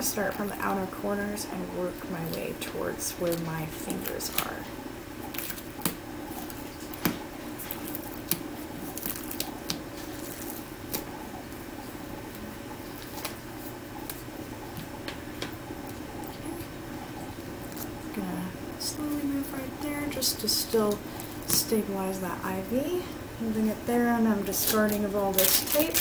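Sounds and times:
steady low hum: 0.0s - 26.0s
adhesive film peeling crackles: 2.1s - 4.6s, 5.2s - 18.2s, 24.3s - 26.0s.

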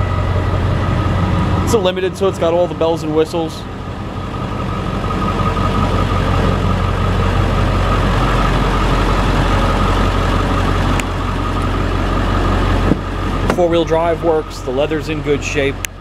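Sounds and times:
diesel engine idling: 0.0s - 16.0s.

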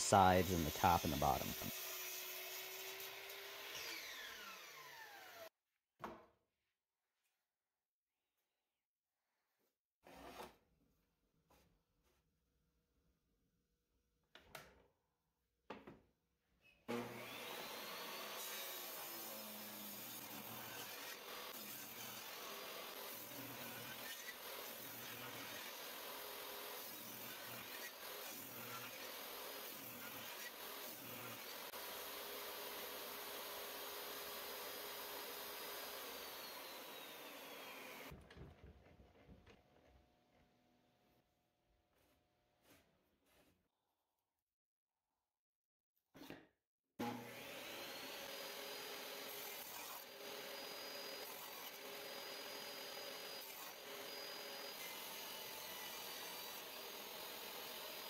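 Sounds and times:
table saw cutting wood: 0.0s - 5.5s, 16.9s - 38.1s, 47.0s - 58.0s.

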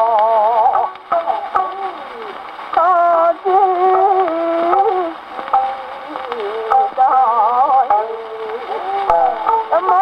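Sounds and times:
record clicks: 0.0s - 10.0s
woman singing on old gramophone: 0.0s - 10.0s.

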